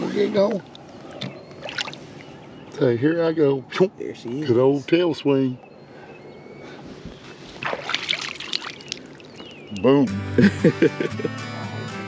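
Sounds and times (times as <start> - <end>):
water splashing against boat: 0.7 - 2.4, 7.5 - 9.7.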